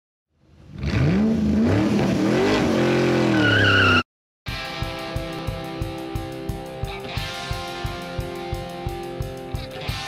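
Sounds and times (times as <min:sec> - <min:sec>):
car engine revving: 0:00.6 - 0:04.0
tire squeal: 0:02.4 - 0:04.1.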